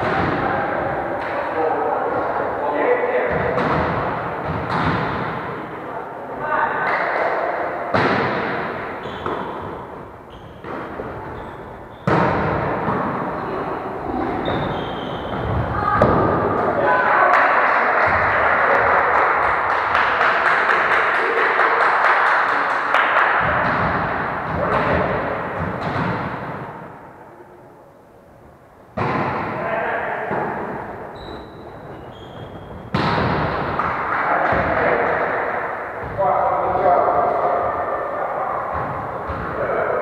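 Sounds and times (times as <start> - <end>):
players' voices: 0.0 - 28.1, 29.0 - 40.0
volleyball being struck: 3.3 - 5.5, 7.9 - 9.8, 12.0 - 13.2, 29.0 - 29.6, 32.9 - 34.7.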